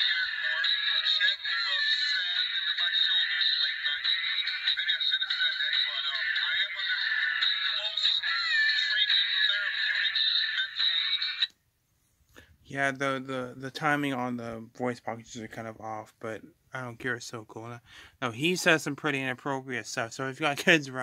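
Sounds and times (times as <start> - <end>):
tinny voice from toy speaker: 0.0 - 11.5.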